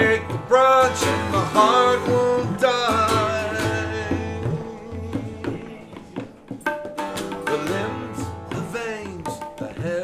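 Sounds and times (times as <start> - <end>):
tabla strokes: 0.0 - 10.0.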